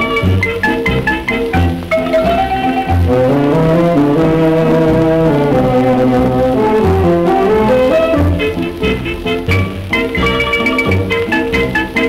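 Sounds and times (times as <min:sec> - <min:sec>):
dance band brass on old record: 0:00.0 - 0:12.0.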